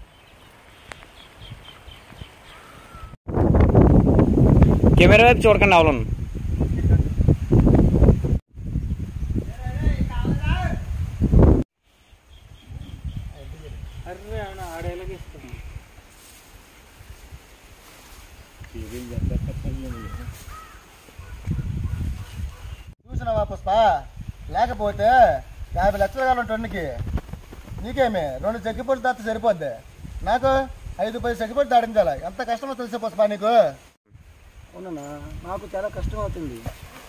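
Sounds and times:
bird calls: 0.0s - 3.2s, 19.9s - 23.0s
bird chirping: 0.0s - 3.2s, 11.9s - 15.3s
loud rustling and crackling: 27.0s - 28.0s.

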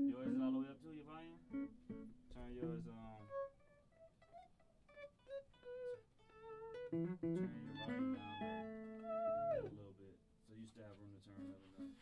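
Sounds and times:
picked guitar notes: 0.0s - 9.9s, 11.3s - 12.0s
strummed guitar chord: 6.8s - 9.4s.

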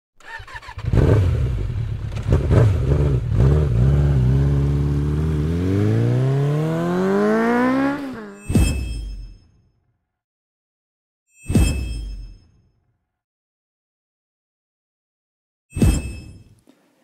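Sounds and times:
motorcycle engine revving: 0.2s - 8.5s.

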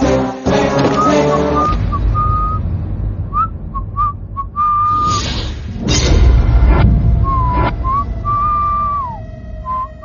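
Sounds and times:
person whistling a tune: 0.9s - 2.6s, 3.3s - 5.1s, 7.2s - 10.0s
steady low rumble: 1.8s - 10.0s.

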